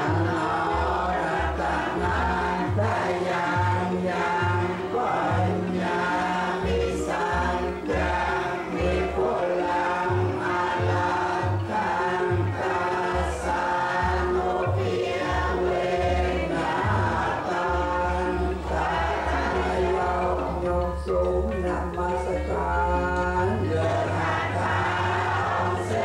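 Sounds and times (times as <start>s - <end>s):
group chanting in unison: 0.0s - 20.7s, 23.4s - 26.0s.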